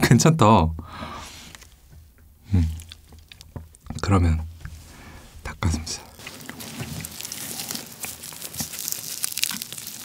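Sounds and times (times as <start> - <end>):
mouth chewing: 2.2 - 3.8, 6.0 - 10.0.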